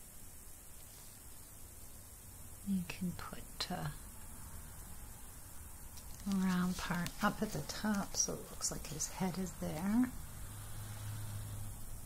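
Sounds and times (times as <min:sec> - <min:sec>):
faint room hiss: 0:00.0 - 0:12.0.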